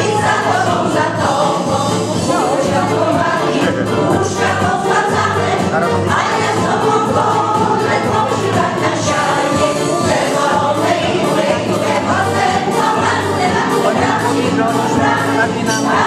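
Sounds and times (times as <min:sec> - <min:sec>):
women's choir singing: 0:00.0 - 0:16.0.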